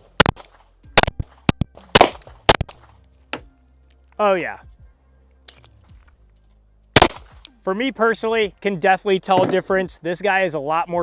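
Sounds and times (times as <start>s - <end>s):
pistol shot: 0.0s - 2.9s, 7.0s - 7.5s.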